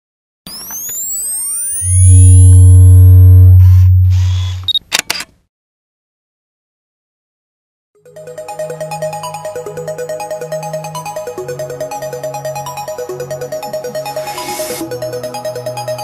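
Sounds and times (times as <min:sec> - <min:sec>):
deep bass drone: 0:01.9 - 0:04.6
camera shutter double click: 0:04.4 - 0:05.3
synth rising sweeps: 0:08.4 - 0:16.0.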